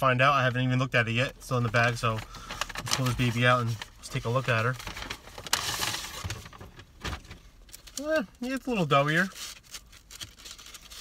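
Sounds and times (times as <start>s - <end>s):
paper bag rustling and crinkling: 1.6s - 11.0s.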